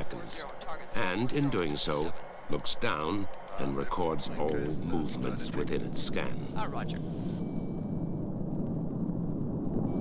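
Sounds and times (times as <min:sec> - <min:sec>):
jet engines droning: 0:00.0 - 0:10.0
high radio tone: 0:03.6 - 0:07.9.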